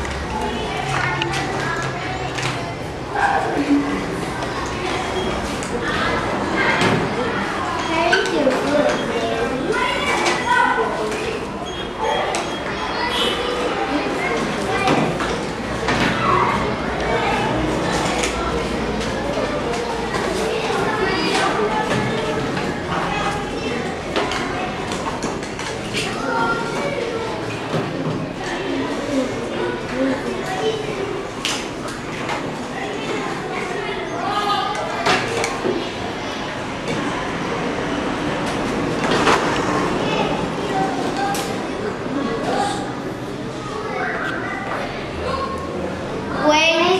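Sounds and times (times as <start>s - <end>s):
children talking: 0.0s - 46.9s.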